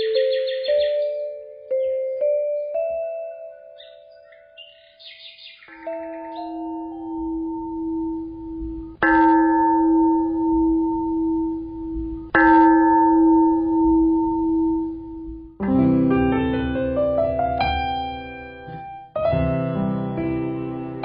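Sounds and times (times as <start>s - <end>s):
faint high chimes: 0.0s - 15.6s
deep-toned bell ringing: 5.7s - 15.6s.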